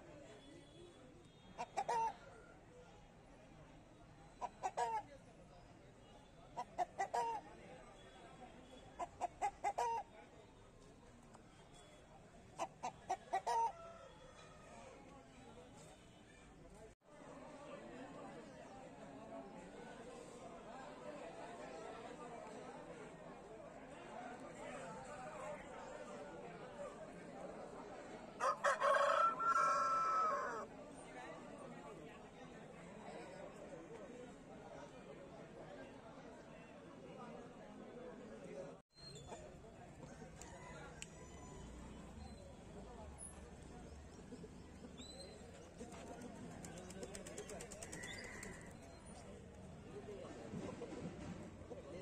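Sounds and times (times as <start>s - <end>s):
faint background chatter: 0.0s - 52.0s
chicken clucking: 12.6s - 13.9s
rooster crowing: 28.4s - 30.6s.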